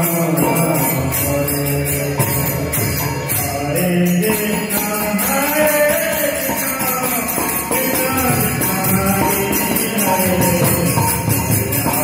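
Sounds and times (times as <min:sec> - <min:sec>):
devotional chanting: 0:00.0 - 0:12.0
jingling percussion: 0:00.0 - 0:12.0.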